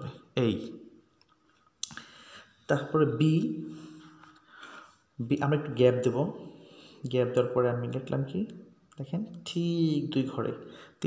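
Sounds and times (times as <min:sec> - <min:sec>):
person speaking: 0:00.0 - 0:00.9, 0:02.7 - 0:11.0.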